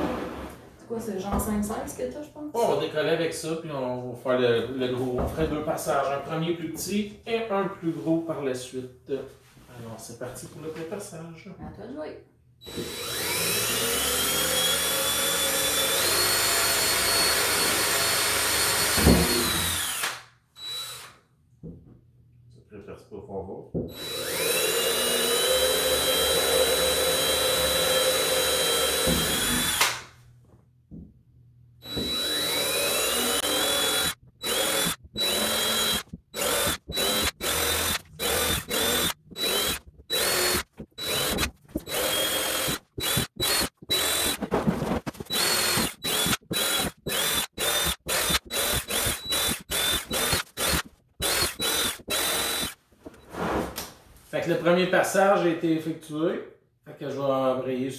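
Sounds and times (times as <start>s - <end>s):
cordless drill whining: 12.6s - 21.2s, 23.9s - 30.1s, 31.8s - 52.8s.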